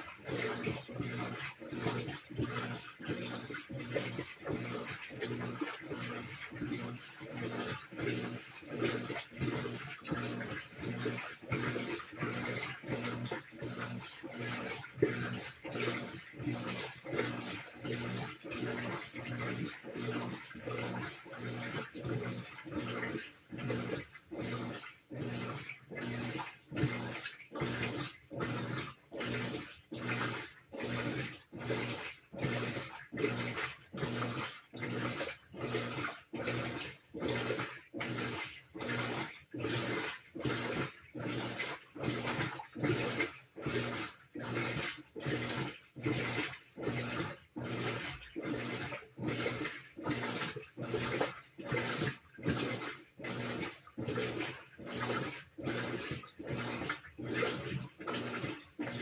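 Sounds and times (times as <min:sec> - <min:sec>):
washer swishing strokes: 0:00.0 - 0:59.0.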